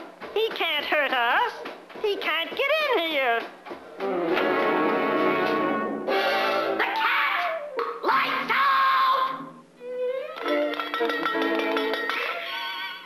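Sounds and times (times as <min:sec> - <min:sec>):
orchestral cartoon music with brass: 0:04.2 - 0:06.8.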